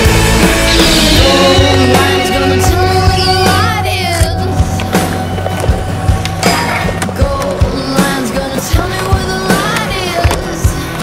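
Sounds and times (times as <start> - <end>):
rock music with steady beat: 0.0 - 11.0
skateboard wheels on concrete: 0.0 - 11.0.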